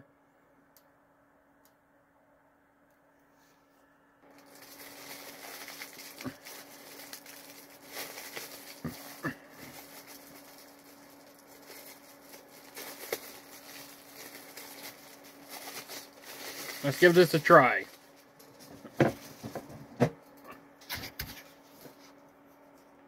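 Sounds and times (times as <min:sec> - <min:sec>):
steady low hum: 0:00.0 - 0:23.0.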